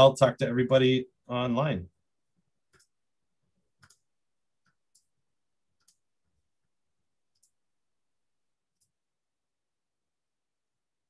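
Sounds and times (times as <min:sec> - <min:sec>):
faint computer mouse clicks: 0:03.8 - 0:05.1, 0:05.8 - 0:06.0, 0:07.3 - 0:07.6.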